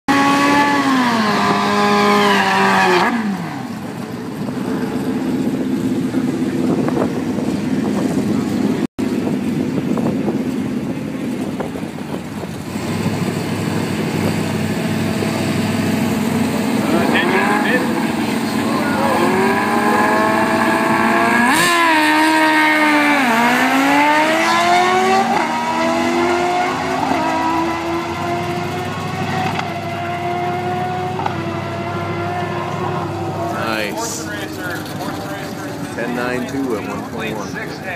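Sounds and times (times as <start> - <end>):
race car engine revving: 0.1 - 37.9.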